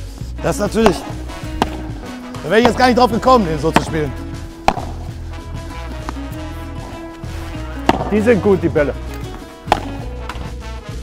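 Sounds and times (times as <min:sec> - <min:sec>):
background music: 0:00.0 - 0:11.0
padel racket striking ball: 0:00.7 - 0:05.3, 0:06.0 - 0:10.6.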